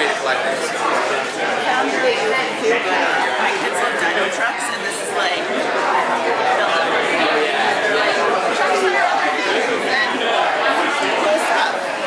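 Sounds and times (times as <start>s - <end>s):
murmur of crowd conversations: 0.0s - 12.0s.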